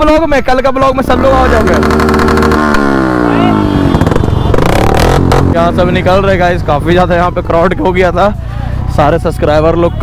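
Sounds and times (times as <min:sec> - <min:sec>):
motorcycle engine revving: 0:00.9 - 0:07.9.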